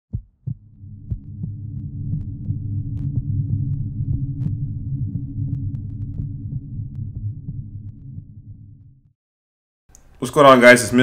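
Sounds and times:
deep heartbeat-like thumps: 0:00.1 - 0:09.2
low steady hum: 0:00.4 - 0:09.1.

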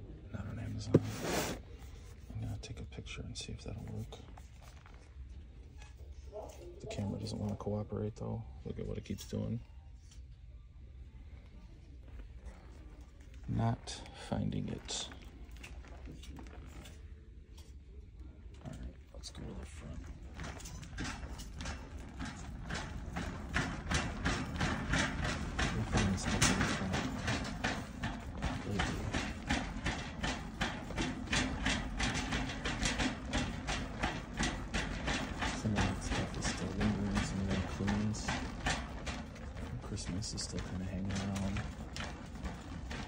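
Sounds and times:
shopping cart rattling: 0:12.1 - 0:17.1, 0:18.7 - 0:43.0.

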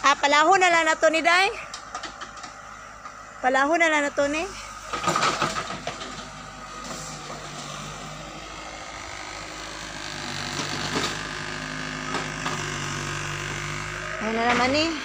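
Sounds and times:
excavator diesel engine running: 0:00.0 - 0:15.0.

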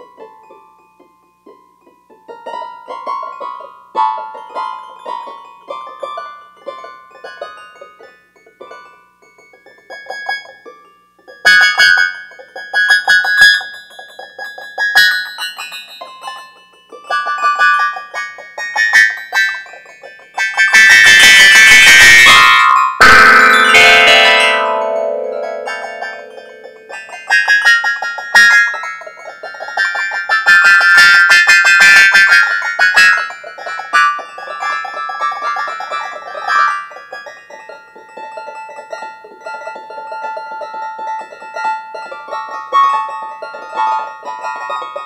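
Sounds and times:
solo piano music: 0:23.0 - 0:26.8
loud piano chords: 0:23.0 - 0:26.9.

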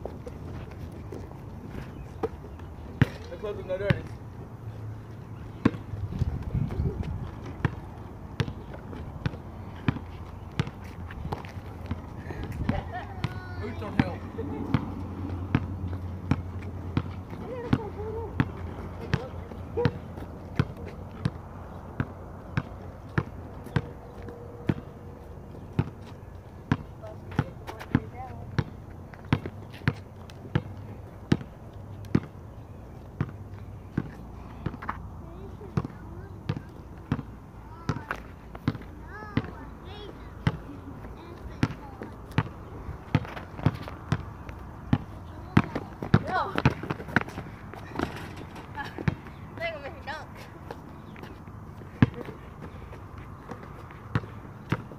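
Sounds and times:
basketball bouncing on asphalt: 0:00.0 - 0:54.9.

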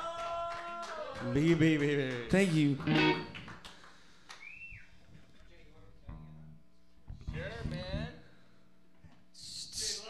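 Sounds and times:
electric guitar notes: 0:02.8 - 0:03.5.

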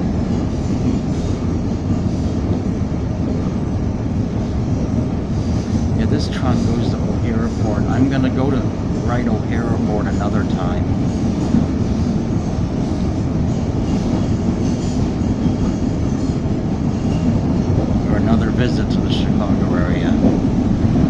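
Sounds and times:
train wheels rumbling on rail: 0:00.0 - 0:21.0.

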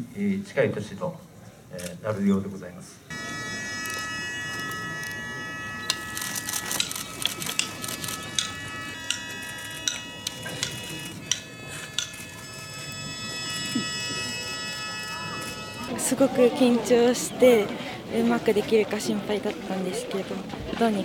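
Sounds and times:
sustained held chords of shrine music: 0:03.1 - 0:16.2.

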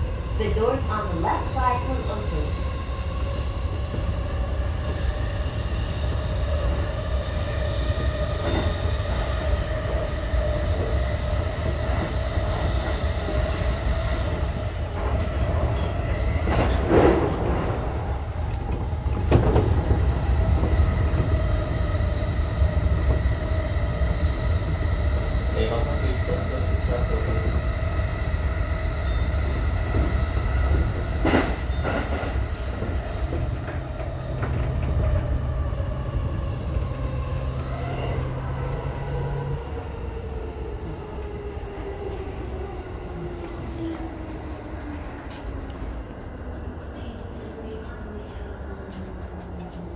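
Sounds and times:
train wheels rumbling on rails: 0:00.0 - 0:49.9.

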